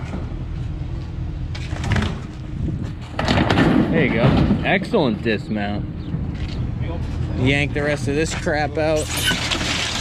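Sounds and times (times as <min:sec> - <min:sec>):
truck engine rumbling: 0:00.0 - 0:10.0
metal unit scraping crash on pavement: 0:09.0 - 0:10.0.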